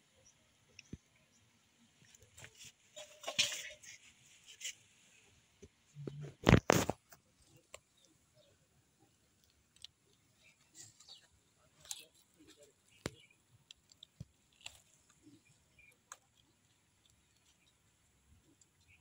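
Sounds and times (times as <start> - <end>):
rustling and crackling in soil: 0.0 - 19.0.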